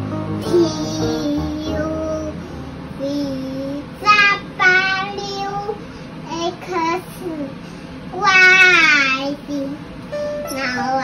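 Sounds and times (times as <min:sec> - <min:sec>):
child singing: 0:00.4 - 0:02.4, 0:03.0 - 0:09.8, 0:10.5 - 0:11.0.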